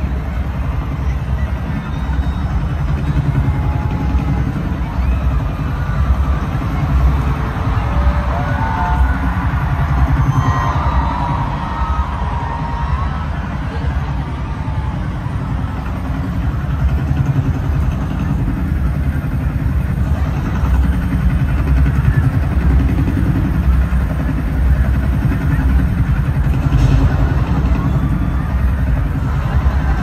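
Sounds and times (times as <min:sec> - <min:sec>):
helicopter rotor chopping over loudspeakers: 0:00.0 - 0:30.0.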